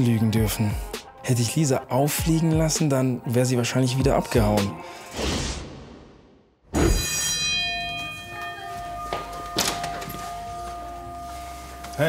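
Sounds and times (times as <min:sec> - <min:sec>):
bell-like hit ringing out: 0:06.8 - 0:10.8.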